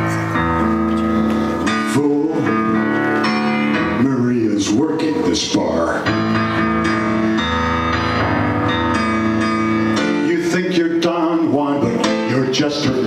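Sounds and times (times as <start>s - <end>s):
keyboard held chords: 0.0s - 13.0s.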